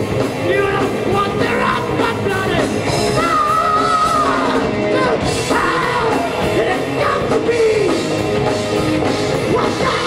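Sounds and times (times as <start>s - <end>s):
heavy metal band playing: 0.0s - 10.0s.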